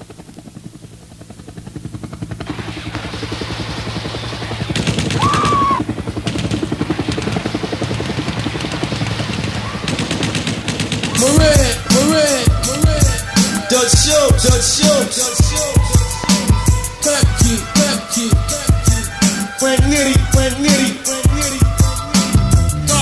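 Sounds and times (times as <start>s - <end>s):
rapid automatic gunfire: 1.6s - 22.4s
hip-hop beat: 11.1s - 23.0s
booming bass drum hits: 22.4s - 23.0s.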